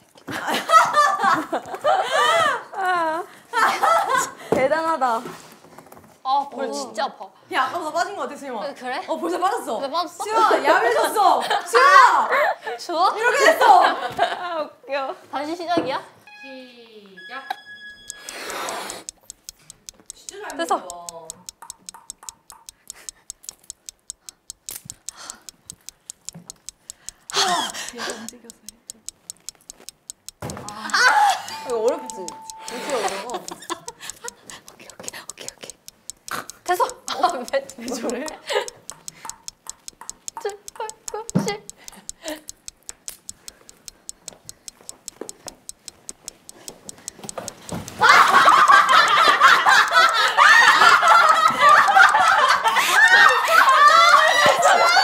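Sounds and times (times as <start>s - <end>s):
fast timer ticking: 17.2s - 55.0s
voices: 19.3s - 21.6s, 27.2s - 29.0s, 30.5s - 42.4s, 47.2s - 55.0s
ping-pong ball bouncing on paddle: 20.3s - 22.9s, 30.3s - 33.9s, 36.3s - 43.5s
loud laughter: 48.0s - 55.0s.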